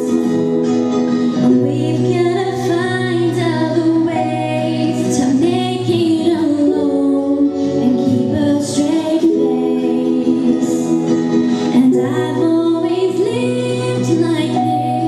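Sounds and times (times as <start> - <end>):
woman singing into microphone: 1.4 - 15.0.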